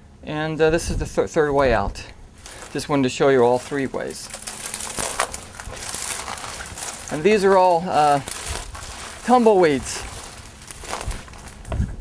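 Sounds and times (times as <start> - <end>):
dry tumbleweed crackling underfoot: 2.3 - 12.0.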